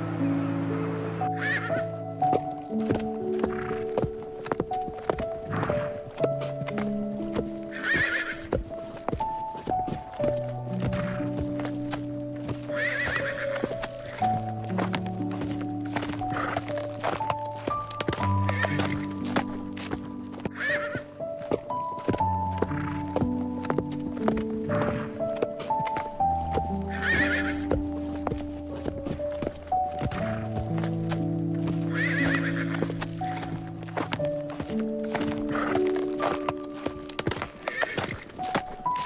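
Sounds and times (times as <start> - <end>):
background music: 0.0 - 39.0
hooves galloping: 1.2 - 39.0
horses neighing: 1.3 - 39.0.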